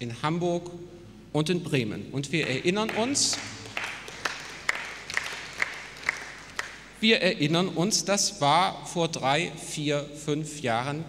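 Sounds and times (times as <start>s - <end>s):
audience applause: 2.4s - 7.0s
single claps: 2.4s - 7.0s.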